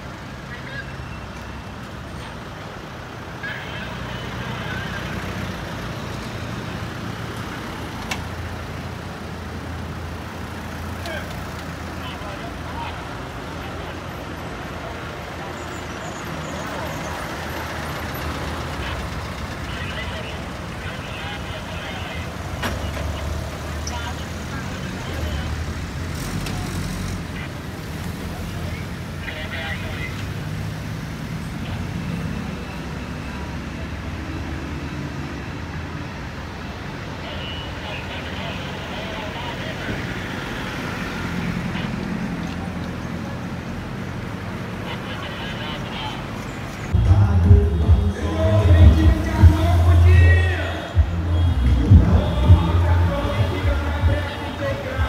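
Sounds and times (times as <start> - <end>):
vehicles driving past: 0.0 - 55.0
voices of onlookers: 3.1 - 9.3, 10.5 - 30.4, 36.6 - 55.0.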